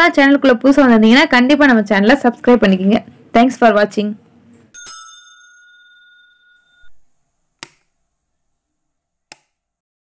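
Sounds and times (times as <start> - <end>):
bell-like chime: 4.7 - 7.0
sharp click: 7.6 - 7.9.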